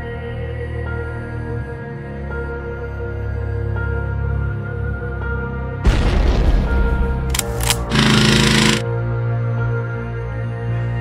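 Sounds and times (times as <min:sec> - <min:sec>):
sharp gunshots: 0:07.3 - 0:08.8
rapid automatic gunfire: 0:07.4 - 0:08.8.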